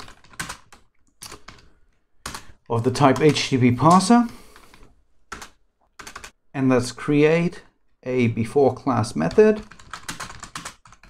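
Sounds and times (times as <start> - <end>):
computer keyboard keystrokes: 0.0 - 2.5, 4.6 - 6.3, 9.6 - 11.0.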